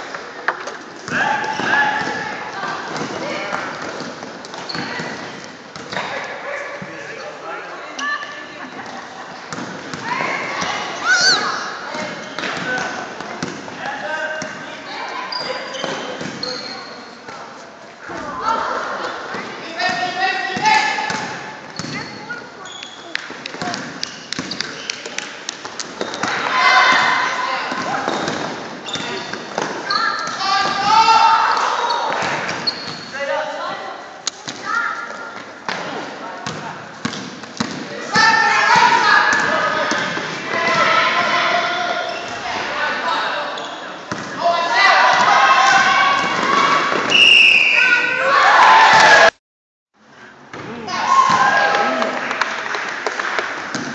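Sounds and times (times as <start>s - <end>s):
voices shouting: 10.0s - 12.1s, 29.8s - 32.4s, 38.0s - 43.3s, 44.4s - 49.3s.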